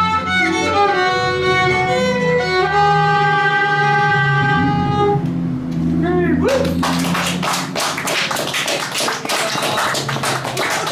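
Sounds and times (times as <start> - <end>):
people clapping: 6.5 - 10.9.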